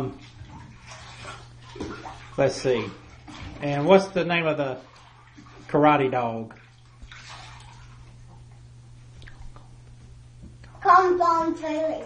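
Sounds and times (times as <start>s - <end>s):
bath water sloshing: 0.0s - 12.0s.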